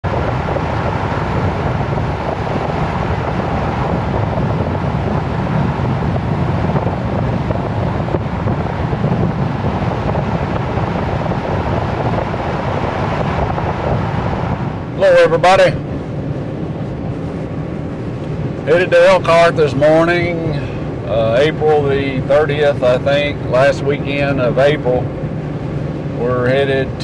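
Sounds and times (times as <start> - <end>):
road noise inside truck cab: 0.0 - 27.0.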